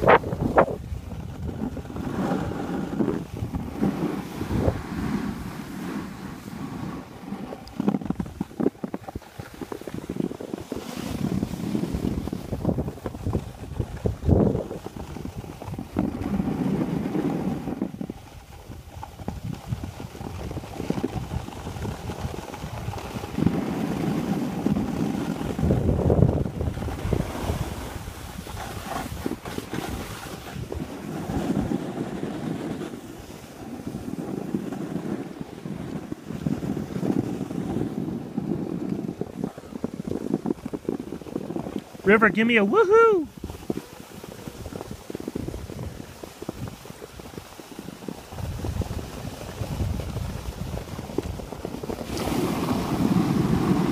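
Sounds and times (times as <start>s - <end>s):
skis scraping over snow: 0.0s - 53.9s
wind buffeting microphone: 0.0s - 53.9s.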